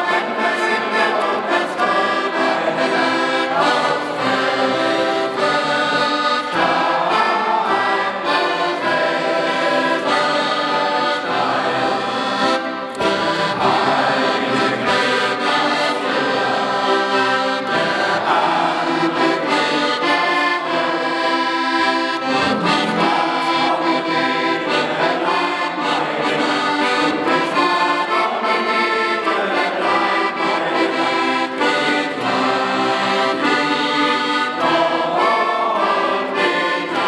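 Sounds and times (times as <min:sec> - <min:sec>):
accordion playing a tune: 0:00.0 - 0:37.0.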